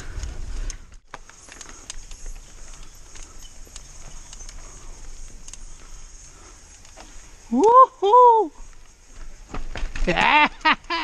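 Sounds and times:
bike clicking and rattling: 0.0 - 11.0
bike tyres rumbling on dirt trail: 0.0 - 11.0
steady high-pitched hiss: 0.0 - 11.0.

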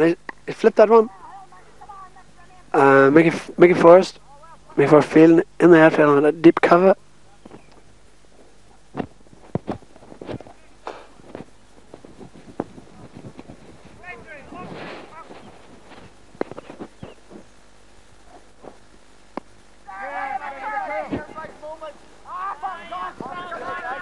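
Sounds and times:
faint distant voices: 0.0 - 6.2, 6.8 - 17.5, 19.8 - 24.0.

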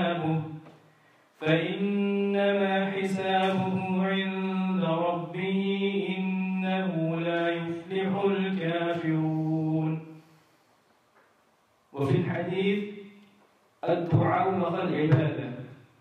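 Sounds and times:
person chanting melodic recitation: 0.0 - 0.6, 1.4 - 10.1.

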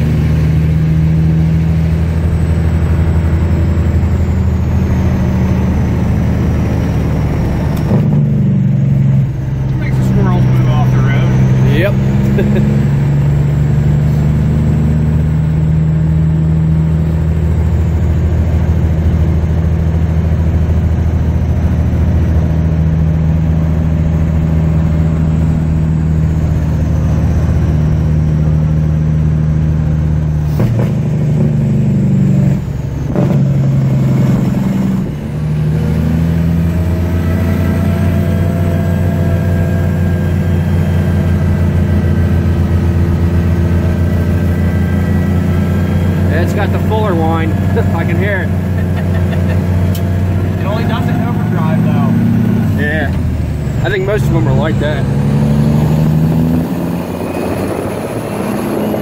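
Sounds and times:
truck diesel engine from inside cab: 0.0 - 59.0.

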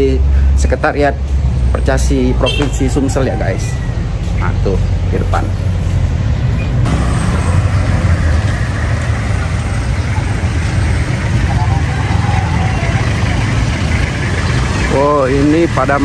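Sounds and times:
car and motorbike engines: 0.0 - 16.0.

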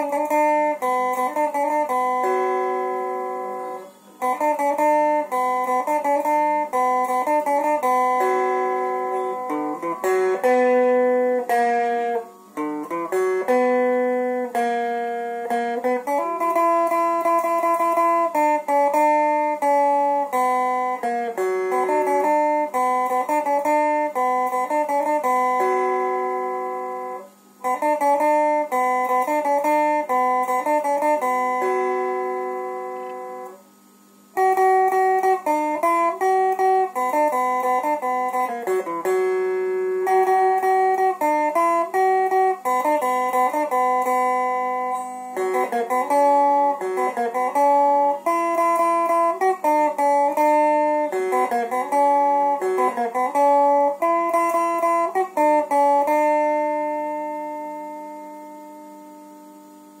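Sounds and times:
electric guitar note ringing: 0.0 - 60.0.

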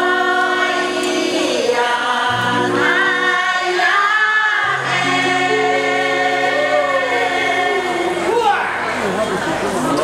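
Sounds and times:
choir singing in parts: 0.0 - 8.8.

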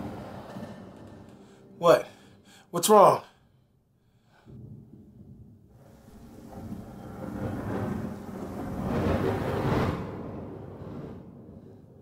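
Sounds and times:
rumbling whoosh: 4.4 - 12.0.

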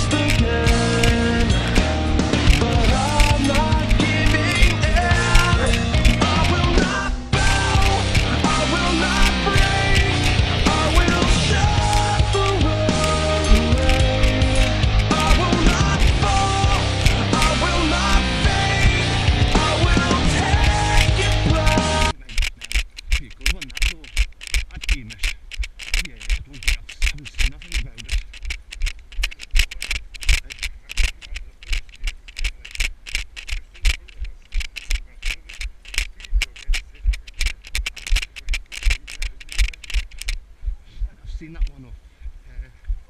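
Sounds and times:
footsteps running on dirt trail: 0.0 - 20.0, 20.6 - 43.0
rock music: 0.0 - 22.2.

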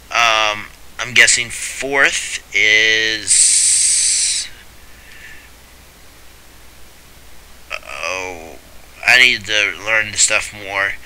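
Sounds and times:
faint steady hiss: 0.0 - 11.0
low hum: 0.0 - 11.0
man saying uh: 0.1 - 4.6, 7.7 - 11.0.

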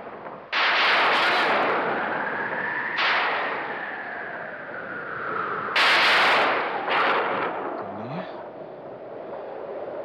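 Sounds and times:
background noise: 0.0 - 10.0
thunder cracking: 5.6 - 8.4.

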